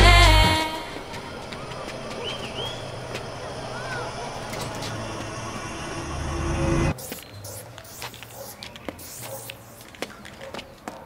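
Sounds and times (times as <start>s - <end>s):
low rumble: 0.0s - 6.9s
street ambience: 0.0s - 11.0s.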